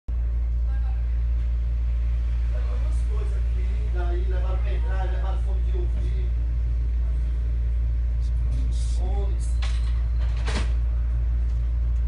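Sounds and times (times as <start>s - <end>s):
steady low rumble: 0.1s - 12.0s.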